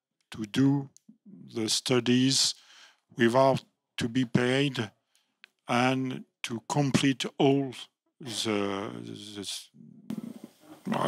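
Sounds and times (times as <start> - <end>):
man speaking into a microphone: 0.3 - 4.9, 5.6 - 9.7.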